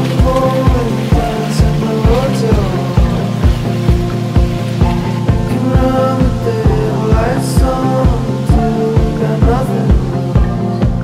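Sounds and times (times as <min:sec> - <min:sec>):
background music with steady beat: 0:00.0 - 0:11.0.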